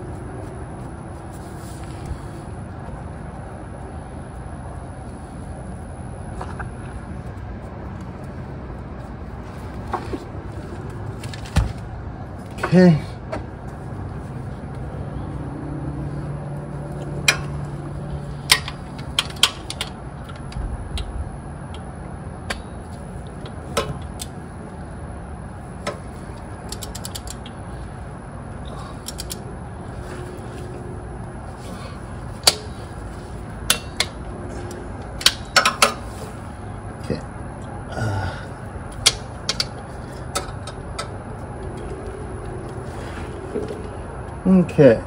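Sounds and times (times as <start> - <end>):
low hum: 0.0 - 45.0
socket ratchet clicking: 26.6 - 27.6, 29.0 - 29.4
tools clinking and knocking: 33.6 - 36.1, 38.9 - 42.8.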